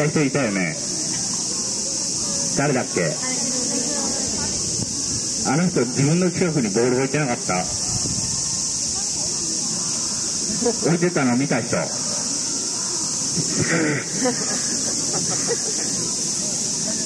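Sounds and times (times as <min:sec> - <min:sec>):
cicada chorus: 0:00.0 - 0:17.0.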